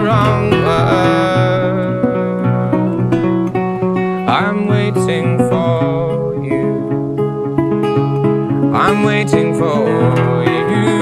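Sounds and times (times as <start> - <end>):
acoustic guitar folk accompaniment: 0.0 - 11.0.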